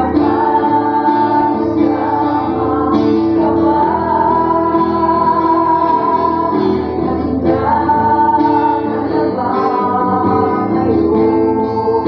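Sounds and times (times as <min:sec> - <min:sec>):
acoustic guitar: 0:00.0 - 0:12.0
group singing worship song: 0:00.0 - 0:12.0.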